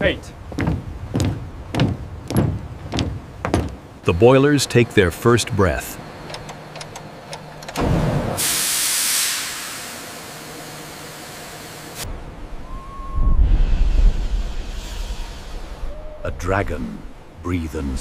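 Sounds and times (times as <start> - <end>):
low machinery hum: 0.2 - 8.4
hissing steam rush: 7.8 - 16.7
deep uneven rumble: 12.1 - 17.4.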